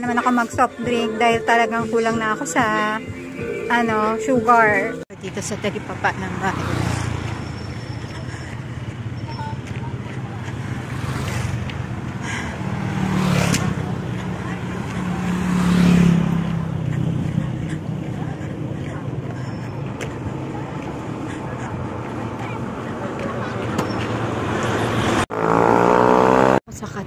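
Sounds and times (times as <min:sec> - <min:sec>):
low traffic engine rumble: 0:00.0 - 0:27.0
vehicles passing close by: 0:00.0 - 0:27.0.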